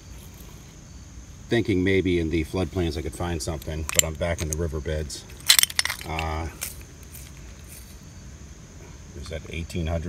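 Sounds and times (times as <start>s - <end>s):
low background hiss: 0.0s - 10.0s
wet stones and glass clicking: 3.9s - 4.6s, 5.4s - 7.3s.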